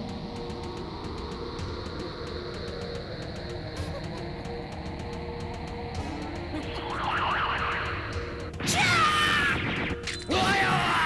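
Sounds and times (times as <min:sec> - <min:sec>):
low droning tones: 0:00.0 - 0:08.8.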